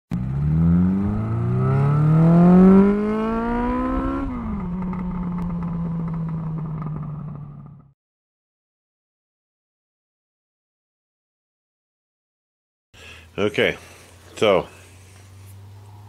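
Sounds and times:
vehicle engine accelerating: 0.1 - 8.0, 13.8 - 16.0.

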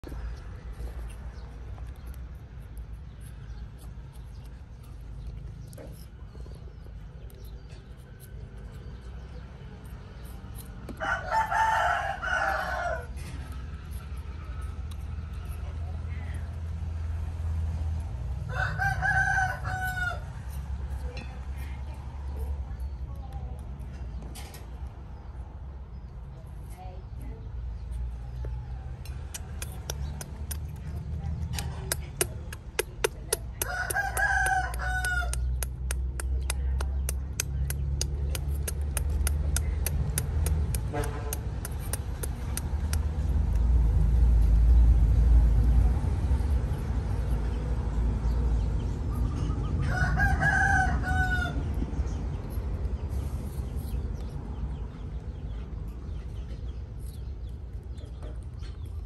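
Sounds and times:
rooster crowing: 11.0 - 13.2, 18.5 - 20.3, 33.6 - 35.4, 49.8 - 51.7
fast run of clicks: 29.2 - 43.7.

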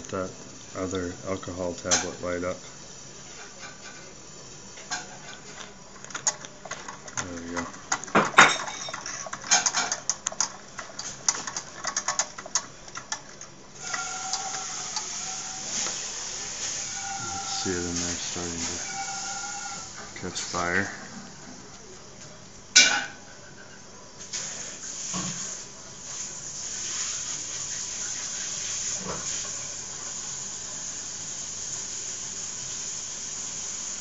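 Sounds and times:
steam hissing with faint whistle: 13.8 - 21.4, 24.2 - 34.0.

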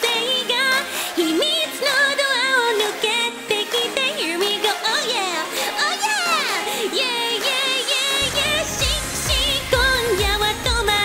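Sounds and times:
upbeat pop backing track: 0.0 - 11.0.

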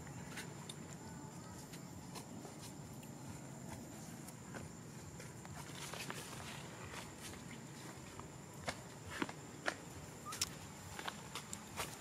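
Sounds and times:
monkeys rustling against tree: 0.0 - 12.0
outdoor background hiss: 0.0 - 12.0.

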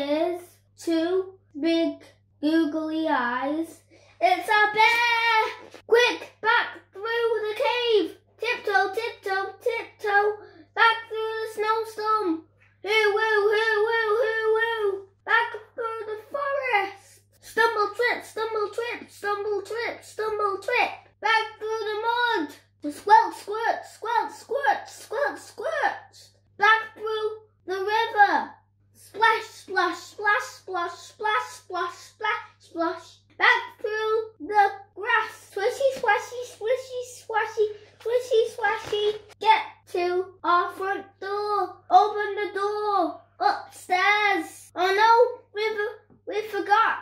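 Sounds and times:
child reading aloud: 0.0 - 47.0.

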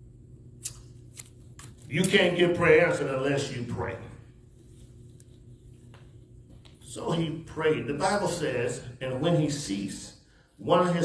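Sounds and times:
low steady room hum: 0.0 - 11.0
man's voice: 6.9 - 11.0.

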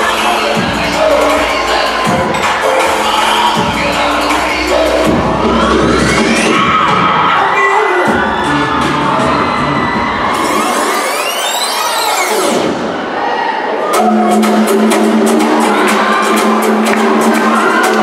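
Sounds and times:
sweeping pitch effect: 0.0 - 7.5
crowd cheering and shouting: 0.0 - 18.0
loud dance music: 0.0 - 18.0.

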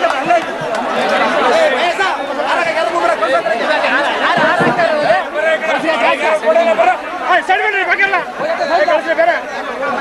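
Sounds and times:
overlapping crowd chatter: 0.0 - 10.0.

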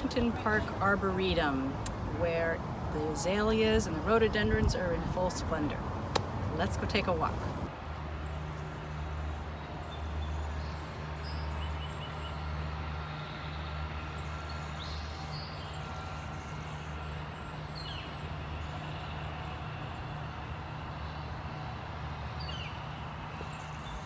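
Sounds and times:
distant road traffic rumble: 0.0 - 24.0.

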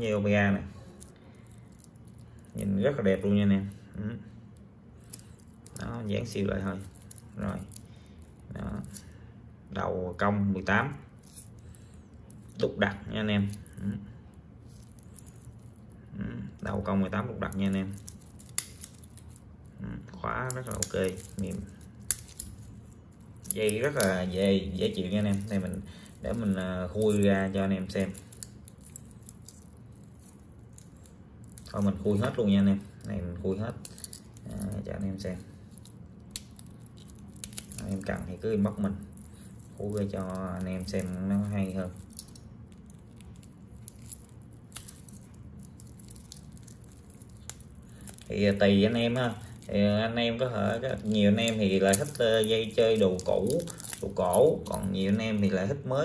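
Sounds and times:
low steady hum: 0.0 - 56.0
pocket knife cutting wrapping: 23.4 - 32.4, 50.7 - 55.5.

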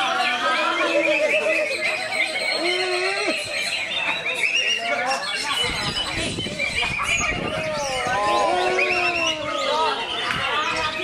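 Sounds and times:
songbirds whistling and trilling: 0.0 - 11.0.

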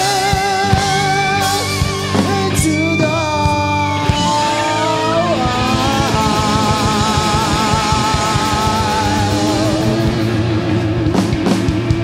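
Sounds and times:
wavering electric guitar note: 0.0 - 12.0.

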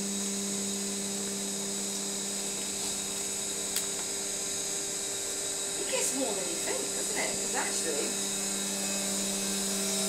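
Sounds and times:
high machine whine: 0.0 - 10.0
motor hum: 0.0 - 10.0.

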